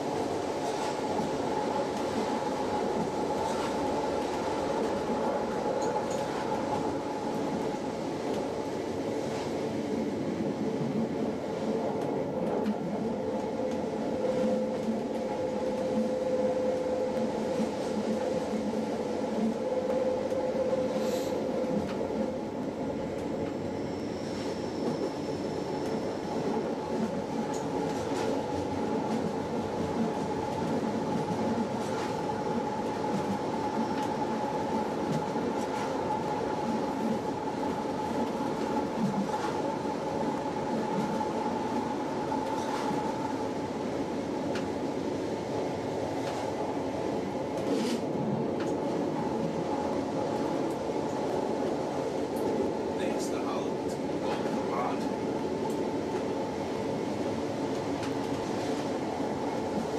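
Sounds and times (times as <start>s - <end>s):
train wheels on rails: 0.0s - 59.9s.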